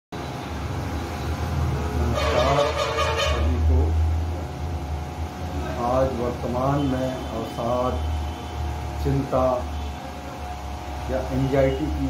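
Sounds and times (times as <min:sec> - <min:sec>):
low rumble of road traffic: 0:00.1 - 0:12.0
vehicle horn: 0:02.0 - 0:03.6.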